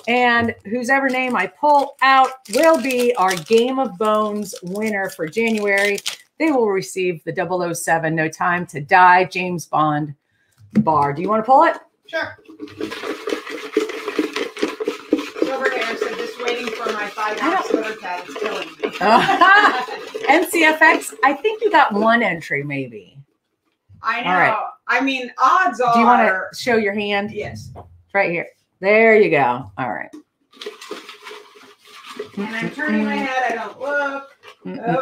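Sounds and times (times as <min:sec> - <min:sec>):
paper slips rattling in container: 0:00.0 - 0:06.6, 0:12.4 - 0:22.4, 0:30.5 - 0:35.0.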